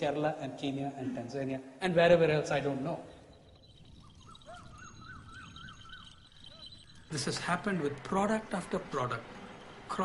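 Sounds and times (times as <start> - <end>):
open-field ambience: 0.0 - 10.0.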